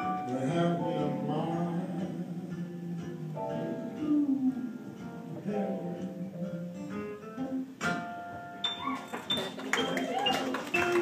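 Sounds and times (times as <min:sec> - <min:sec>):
audience whistles: 0:08.6 - 0:11.0
audience voices: 0:08.7 - 0:11.0
audience clapping: 0:08.9 - 0:11.0.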